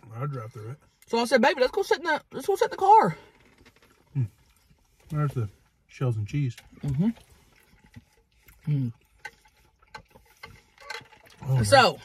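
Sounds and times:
chewing mouth noises: 0:06.5 - 0:11.4.

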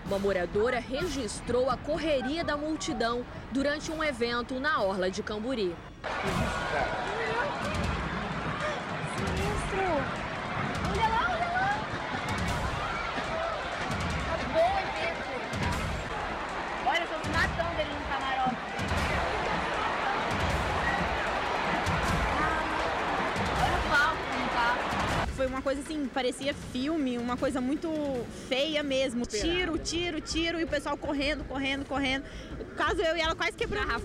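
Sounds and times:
crowd voices: 0:00.0 - 0:34.0
people shouting and screaming: 0:06.1 - 0:25.3.

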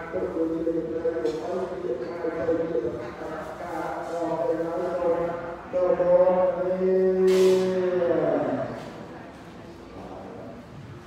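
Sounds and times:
monks chanting over microphone: 0:00.0 - 0:08.8.

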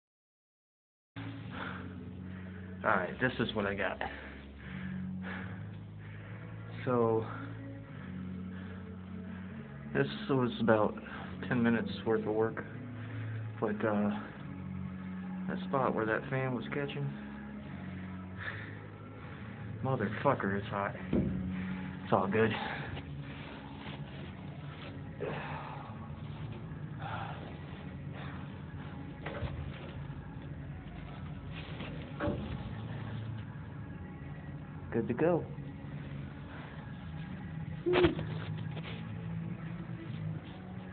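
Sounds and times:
low machine hum: 0:01.2 - 0:40.9.

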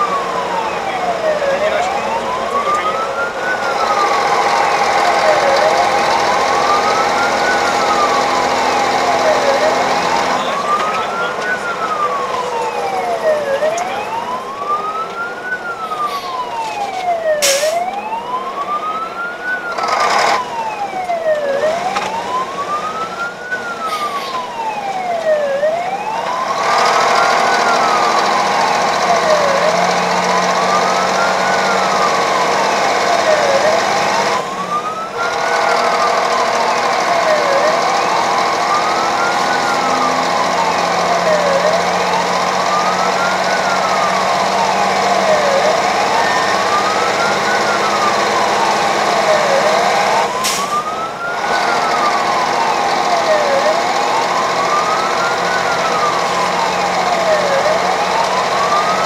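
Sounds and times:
fire engine siren wailing: 0:00.0 - 0:59.0
road noise: 0:00.0 - 0:59.0
truck engine: 0:00.0 - 0:59.0.

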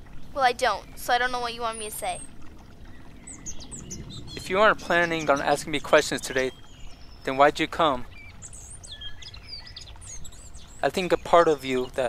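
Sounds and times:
low background rumble: 0:00.0 - 0:12.0
small birds chirping: 0:00.2 - 0:12.0.

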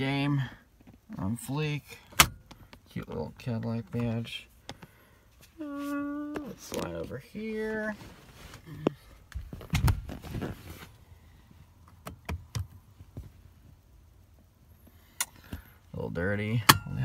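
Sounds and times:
rustling on car seat: 0:05.6 - 0:11.0.

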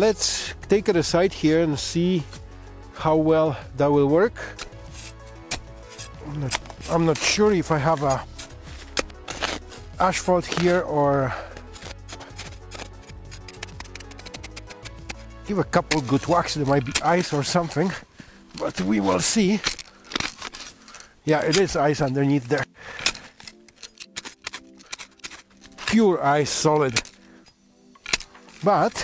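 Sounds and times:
background music: 0:00.0 - 0:29.0
shovel scraping snow: 0:04.4 - 0:27.4, 0:28.1 - 0:29.0.

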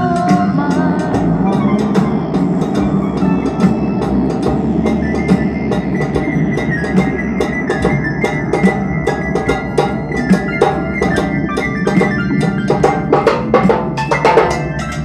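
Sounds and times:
blues music: 0:00.0 - 0:15.0
stick percussion strokes: 0:00.0 - 0:15.0.

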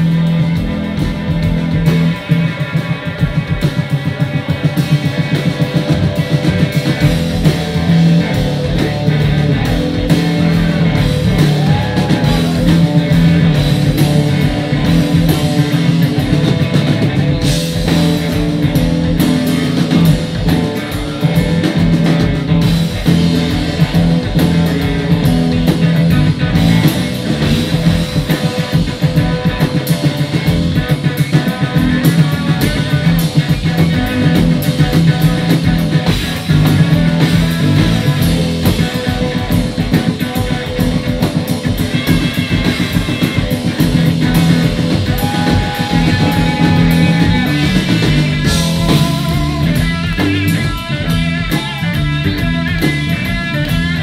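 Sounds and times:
drum kit: 0:00.0 - 0:54.0
electric bass: 0:00.0 - 0:54.0
electric guitar: 0:00.0 - 0:54.0.

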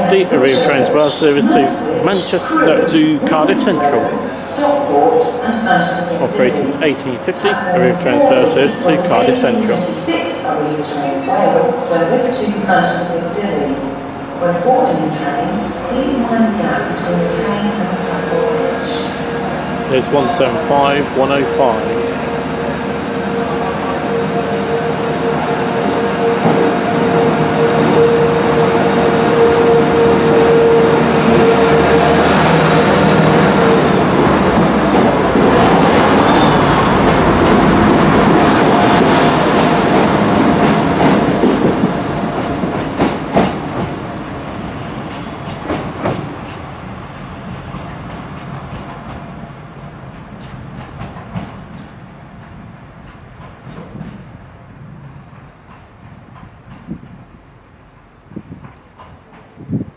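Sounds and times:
train carriages rumbling past: 0:00.0 - 0:59.9
train whine: 0:00.0 - 0:59.9.

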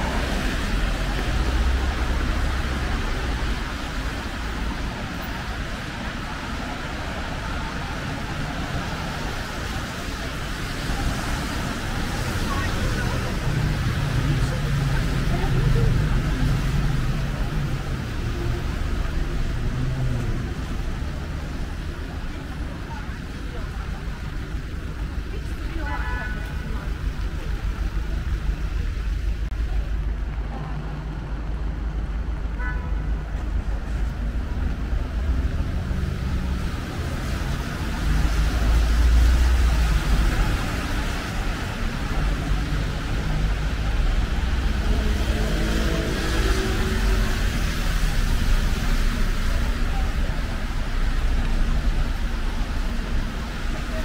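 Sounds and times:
people's voices: 0:00.0 - 0:54.0.

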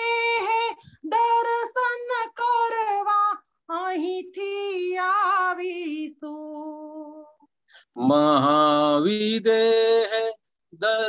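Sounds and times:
woman singing devotional song: 0:00.0 - 0:08.4.

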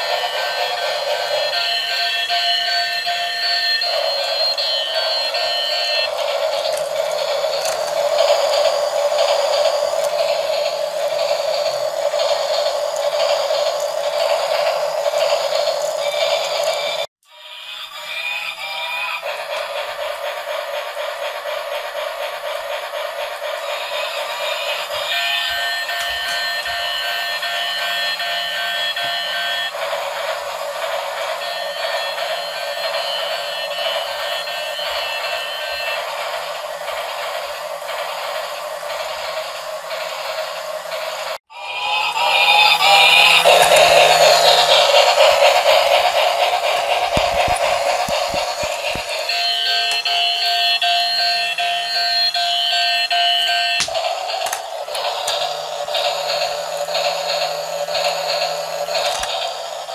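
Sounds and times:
toy motor whirring: 0:00.0 - 0:59.9.

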